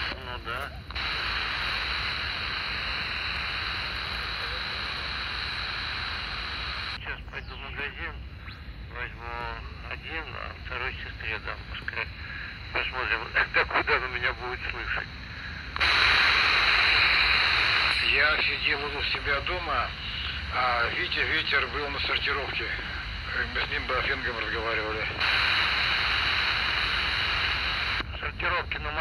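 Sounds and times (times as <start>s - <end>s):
person speaking over radio: 0.0s - 2.6s, 6.8s - 8.2s, 8.9s - 15.2s, 15.8s - 25.9s, 26.8s - 29.0s
radio static hiss: 0.0s - 29.0s.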